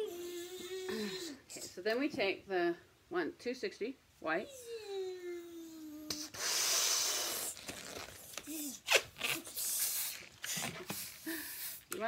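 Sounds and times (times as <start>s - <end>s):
breath blowing up balloon: 6.0s - 12.0s.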